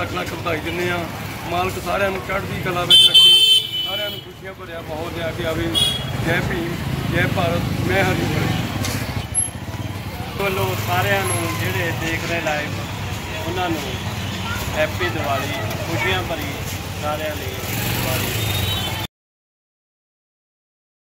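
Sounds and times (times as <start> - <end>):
man speaking: 0.0 - 8.6, 14.7 - 17.6
street noise: 0.0 - 19.1.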